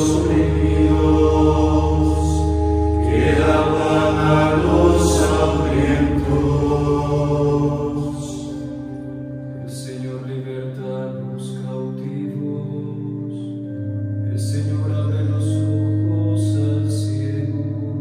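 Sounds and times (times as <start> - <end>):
men chanting in unison: 0.0 - 8.4.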